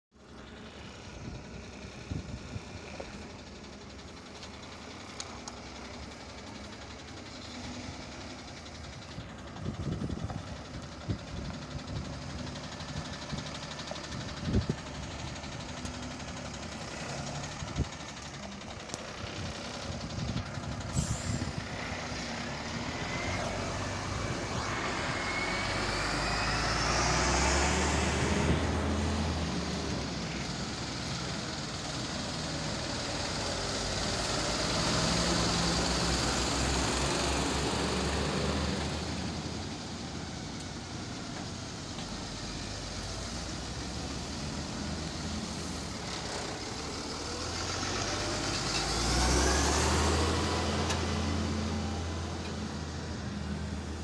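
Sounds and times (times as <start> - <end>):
trucks driving past: 0.1 - 54.0
rising engine whine: 0.2 - 54.0.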